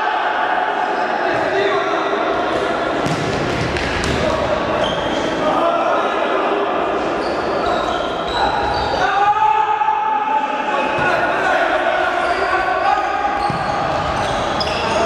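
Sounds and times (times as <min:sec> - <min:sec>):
players shouting: 0:00.0 - 0:15.0
shoes squeaking on wooden court: 0:07.2 - 0:09.0, 0:13.3 - 0:15.0.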